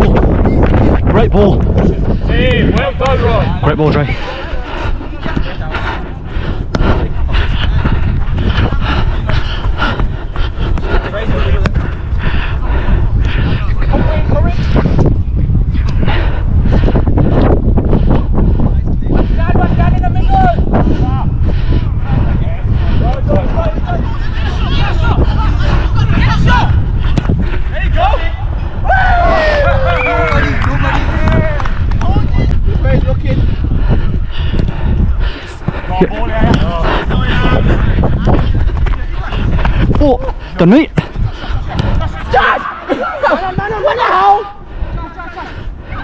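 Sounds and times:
wind buffeting microphone: 0:00.0 - 0:46.0
players shouting: 0:23.1 - 0:31.8, 0:41.7 - 0:44.6.

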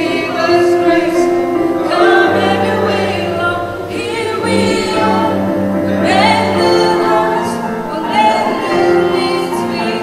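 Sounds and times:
group singing in harmony: 0:00.0 - 0:10.0.

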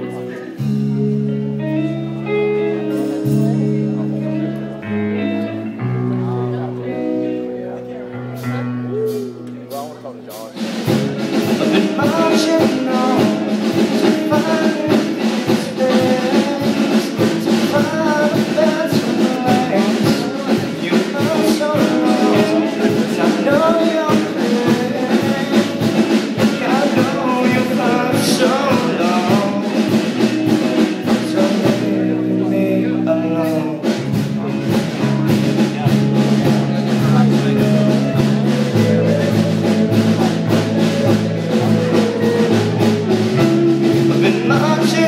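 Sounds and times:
rock band playing: 0:00.0 - 0:45.0.

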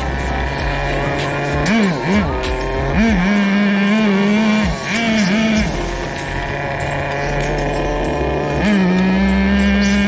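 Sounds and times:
small nitro engine revving: 0:00.0 - 0:10.0.

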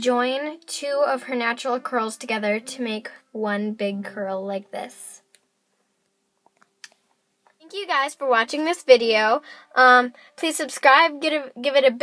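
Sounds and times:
girl speaking: 0:00.0 - 0:05.2, 0:07.6 - 0:12.0.

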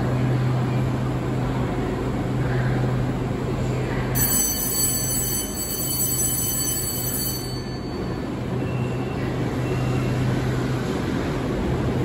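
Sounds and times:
train humming: 0:00.0 - 0:12.0.

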